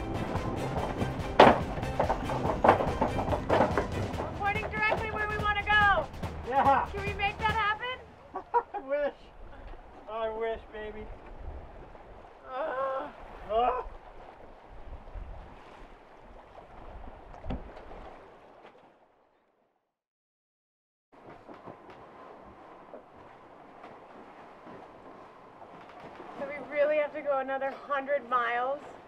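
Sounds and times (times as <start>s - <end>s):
wind and sea noise: 0.0s - 19.5s, 21.2s - 29.0s.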